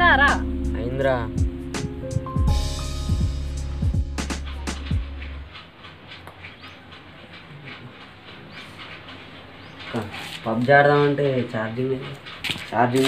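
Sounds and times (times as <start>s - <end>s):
heavy bass with falling pitch slides: 0.0s - 5.5s
faint regular ticking: 0.0s - 13.0s.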